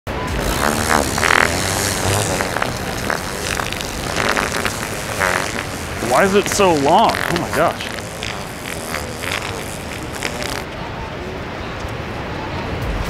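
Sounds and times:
fart sound effects: 0.1s - 10.7s.

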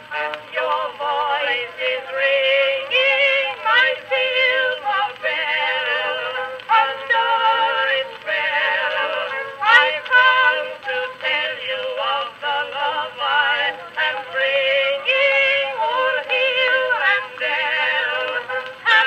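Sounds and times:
old phonograph vocal duet: 0.0s - 19.0s.

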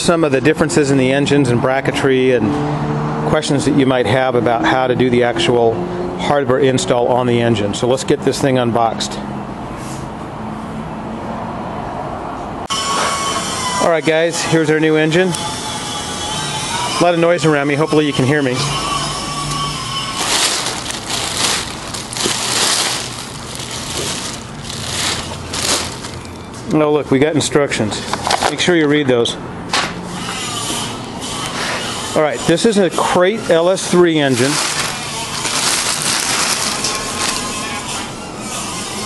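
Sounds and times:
plastic bag crinkling and rustling: 19.9s - 26.6s, 34.3s - 37.8s.

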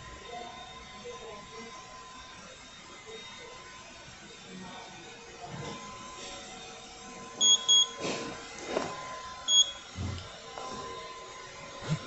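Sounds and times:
short high electronic beeps: 7.4s - 8.0s.

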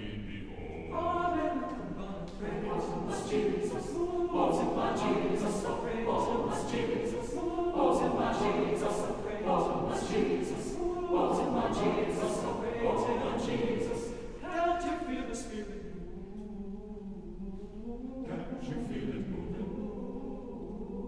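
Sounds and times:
choir singing a cappella: 0.0s - 21.0s.

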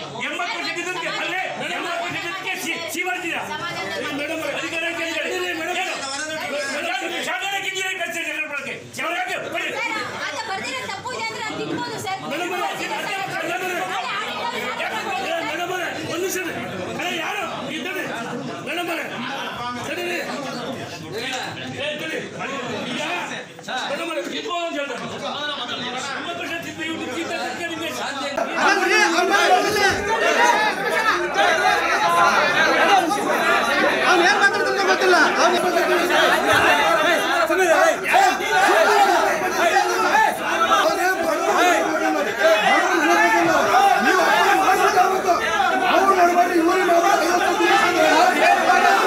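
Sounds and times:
men arguing: 0.0s - 49.0s.

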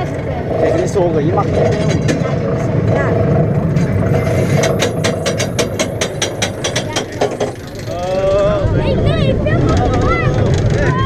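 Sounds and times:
rumble of ride: 0.0s - 11.0s
roller coaster ratchet clicking: 0.1s - 11.0s
riders shrieking and whooping: 7.9s - 11.0s.

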